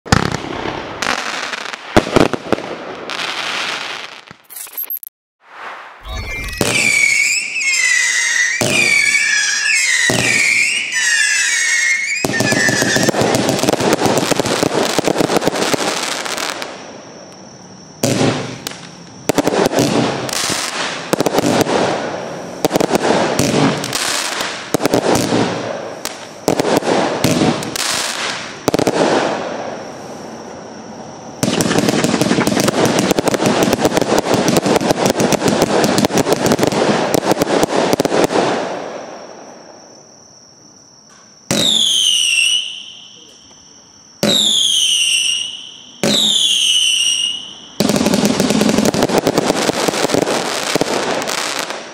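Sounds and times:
firework whistles: 0:00.1 - 0:40.3, 0:41.1 - 0:51.9
firework salvos: 0:00.1 - 0:51.9
firework crackling: 0:05.4 - 0:39.6, 0:44.2 - 0:51.9.

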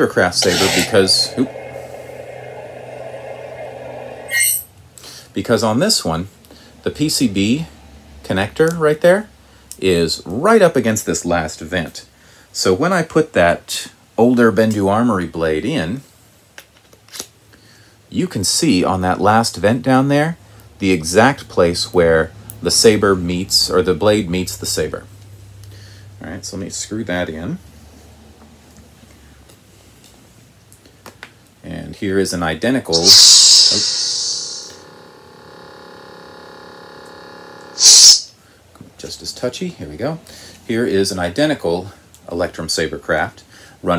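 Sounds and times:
loud hiss: 0:00.0 - 0:04.6, 0:32.9 - 0:34.9, 0:37.8 - 0:38.4
steady electric hum: 0:00.0 - 0:04.8, 0:32.9 - 0:38.4.

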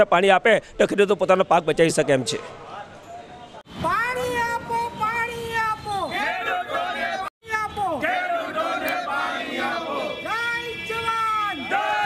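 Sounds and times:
men shouting together: 0:06.1 - 0:07.3, 0:07.9 - 0:12.0.

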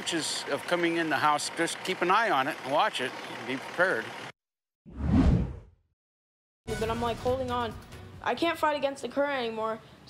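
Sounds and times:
whoosh sound effect: 0:04.9 - 0:05.7.

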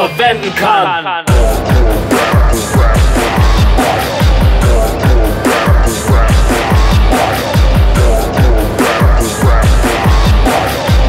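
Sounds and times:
deep kick drums: 0:01.3 - 0:11.0.

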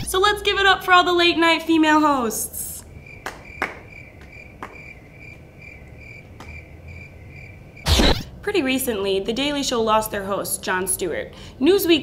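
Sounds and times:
cricket chirping: 0:02.8 - 0:08.3.

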